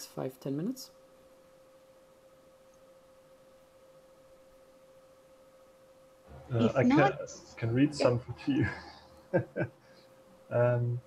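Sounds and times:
faint steady hum tone: 0.0 - 11.0.

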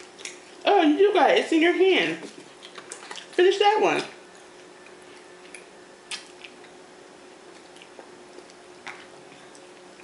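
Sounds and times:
pizza being chewed: 0.0 - 0.8, 2.2 - 10.0
faint steady hum: 0.0 - 10.0.

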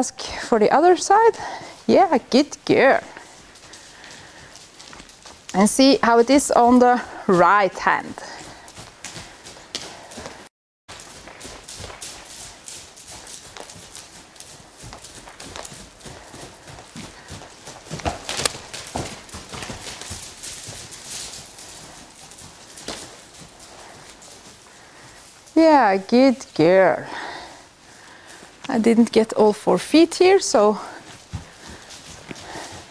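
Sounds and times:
horse hoofbeats on hay: 0.9 - 32.9.

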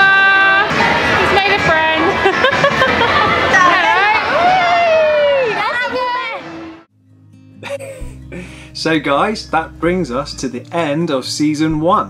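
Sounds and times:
children shouting: 2.0 - 6.8
strummed guitar music: 6.9 - 12.0.

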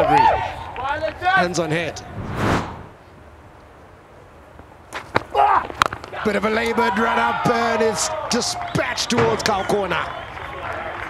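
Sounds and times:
faint ground ambience: 0.0 - 10.9
swoosh transition effect: 2.0 - 3.1.

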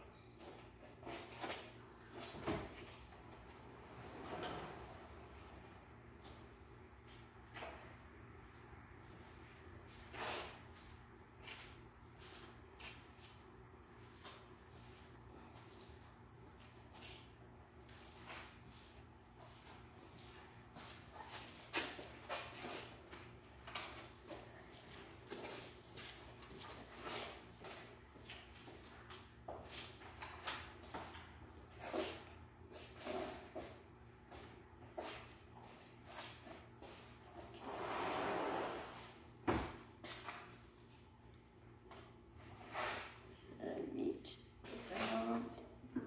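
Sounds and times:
footsteps on concrete floor: 0.1 - 3.6, 6.0 - 43.4, 44.5 - 46.0.

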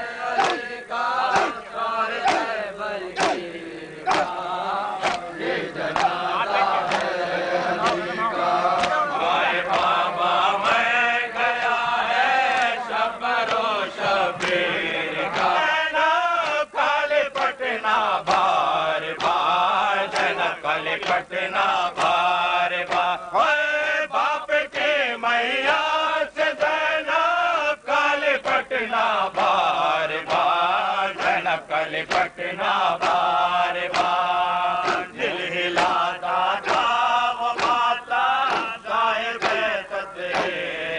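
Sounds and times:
men chanting a lament: 0.0 - 40.9
hands slapping on chests: 0.3 - 1.6, 2.2 - 2.6, 3.2 - 4.4, 5.0 - 7.2, 7.8 - 10.9, 11.5 - 12.8, 13.4 - 14.7, 16.4 - 16.7, 17.3 - 17.6, 18.2 - 21.3, 21.9 - 23.2, 29.4 - 40.6.

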